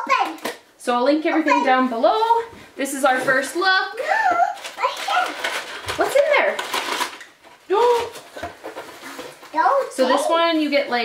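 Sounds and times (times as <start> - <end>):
cardboard box and paper rustling: 4.3 - 11.0.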